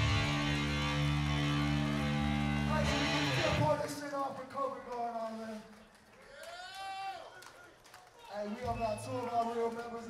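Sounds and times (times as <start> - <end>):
electric guitar chord ringing: 0.0 - 3.7.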